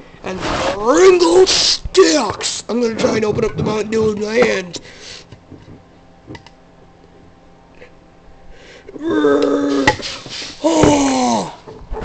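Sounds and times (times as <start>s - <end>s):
high strained vocal cry: 9.0s - 10.0s, 10.6s - 11.7s.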